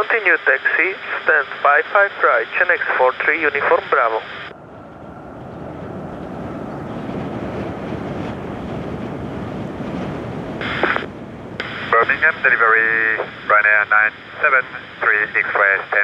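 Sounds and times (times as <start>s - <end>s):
jet engines rushing: 3.3s - 16.0s
airband radio burst: 10.6s - 16.0s.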